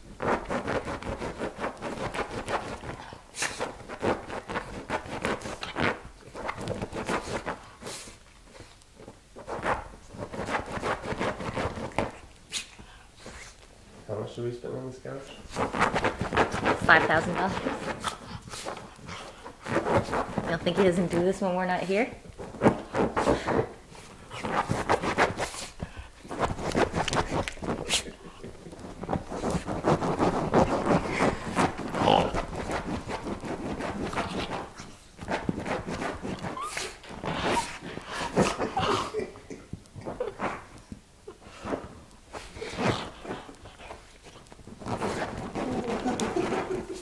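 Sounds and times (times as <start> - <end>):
dog scratching at couch cushion: 0.2 - 13.6, 15.3 - 21.3, 22.2 - 38.8, 41.6 - 47.0.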